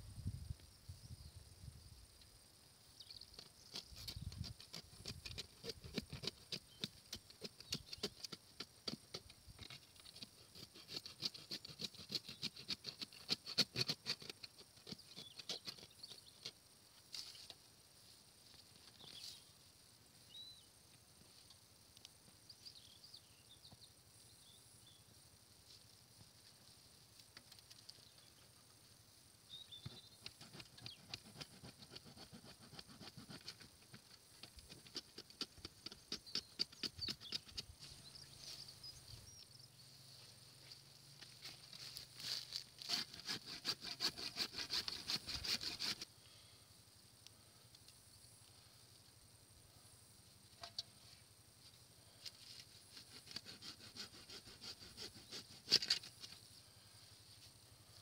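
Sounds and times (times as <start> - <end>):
handsaw rasping through roots: 3.7 - 16.0, 29.8 - 37.7, 42.2 - 46.1, 52.9 - 56.4
earth scraping and crunching: 41.2 - 43.8.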